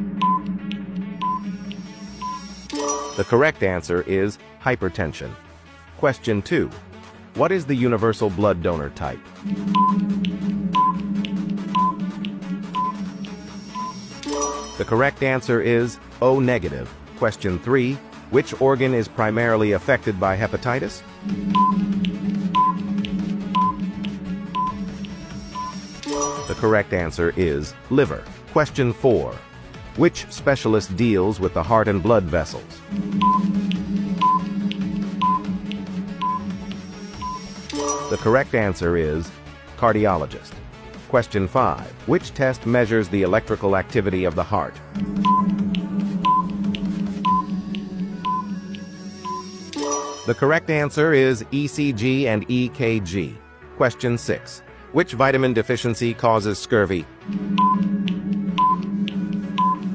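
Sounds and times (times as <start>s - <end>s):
background music: 0.0s - 59.9s
short high beeps: 0.2s - 0.5s, 1.2s - 3.3s, 9.5s - 14.9s, 21.3s - 26.6s, 32.9s - 38.3s, 45.2s - 50.4s, 57.5s - 57.9s, 58.6s - 58.9s, 59.6s - 59.9s.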